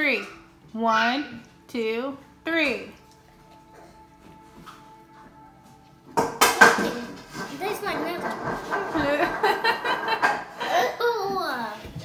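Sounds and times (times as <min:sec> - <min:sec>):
girls laughing: 0:08.9 - 0:11.0.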